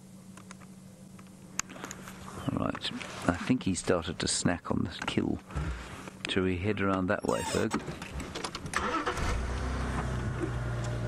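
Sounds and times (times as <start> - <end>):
engine starter noise and clicks: 7.3 - 11.0.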